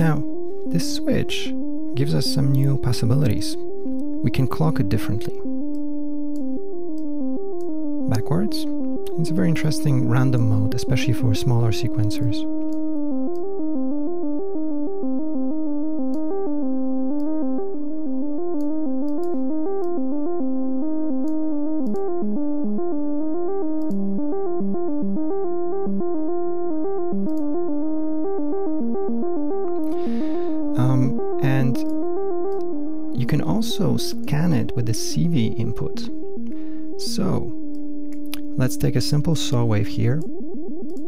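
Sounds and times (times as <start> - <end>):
synthesizer sequencer melody: 0.0 - 41.0.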